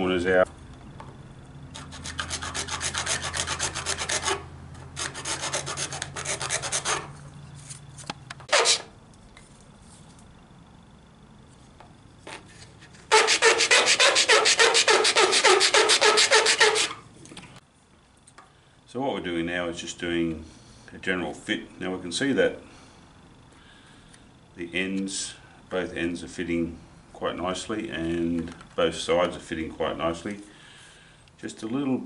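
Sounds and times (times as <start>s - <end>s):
file rasping on plastic: 1.7s - 7.2s, 8.5s - 8.9s, 13.1s - 17.0s.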